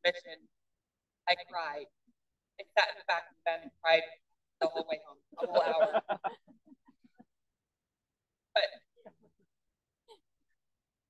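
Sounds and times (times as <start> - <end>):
woman laughing into microphone: 5.4 - 7.2.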